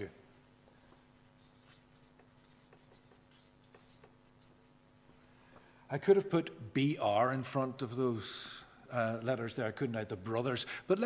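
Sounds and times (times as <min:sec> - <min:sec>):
pen scratching on a board: 0:01.4 - 0:04.5.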